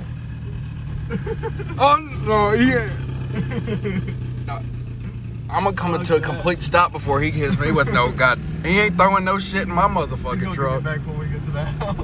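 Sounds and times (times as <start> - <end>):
truck engine and road noise: 0.0 - 12.0.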